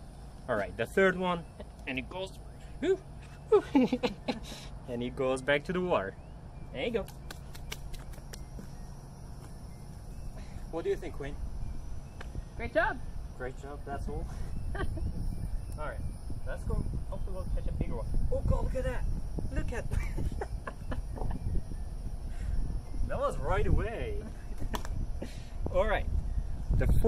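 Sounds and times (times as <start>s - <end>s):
high insect buzz: 6.5s - 26.9s
wind rumble on microphone: 6.6s - 27.0s.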